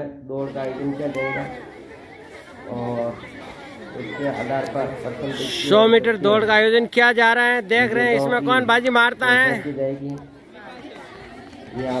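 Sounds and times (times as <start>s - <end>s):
onlookers chattering: 0.0s - 12.0s
man speaking: 4.1s - 10.3s.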